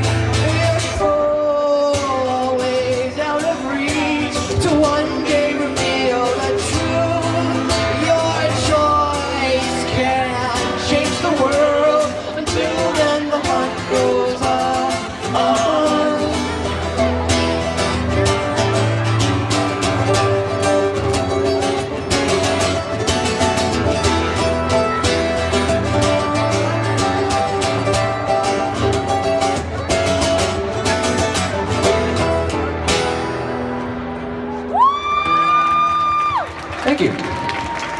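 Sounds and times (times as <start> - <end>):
guitars playing: 0.0 - 36.6.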